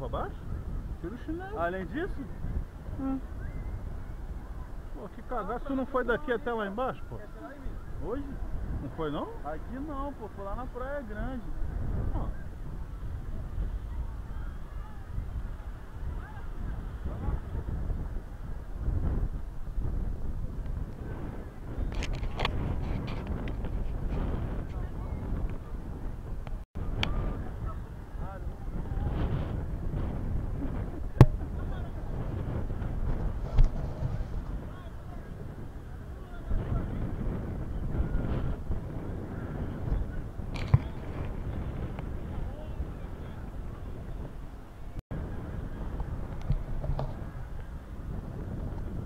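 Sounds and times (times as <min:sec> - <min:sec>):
wind on microphone: 0:00.0 - 0:49.0
faint indistinct voices: 0:02.2 - 0:10.4, 0:11.2 - 0:19.2, 0:24.1 - 0:48.4.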